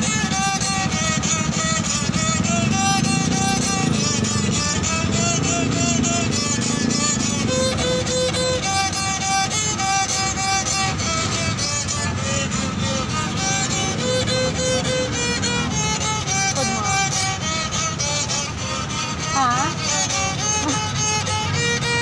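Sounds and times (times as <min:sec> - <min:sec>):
bowed wooden fiddle melody: 0:00.0 - 0:22.0.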